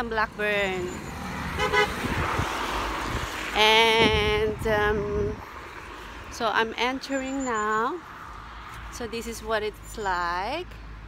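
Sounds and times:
car tyre noise passing: 0.3 - 9.2.

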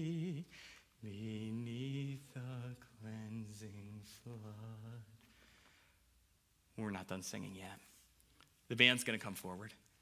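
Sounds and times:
man singing a hymn unaccompanied: 0.0 - 5.4.

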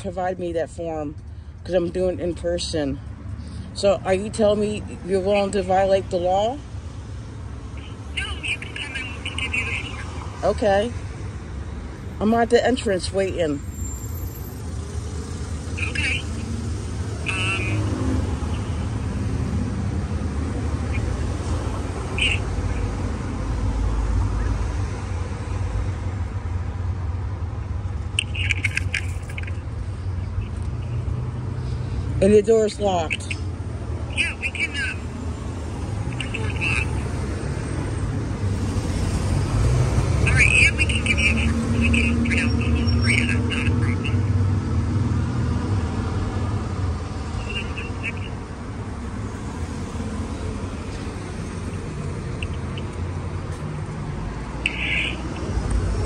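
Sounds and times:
street traffic rumble: 0.0 - 56.0
vehicle passing: 0.9 - 56.0.

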